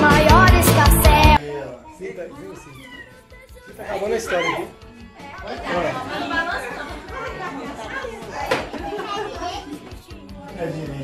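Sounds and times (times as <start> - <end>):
background music: 0.0 - 11.0
people chattering: 1.4 - 11.0.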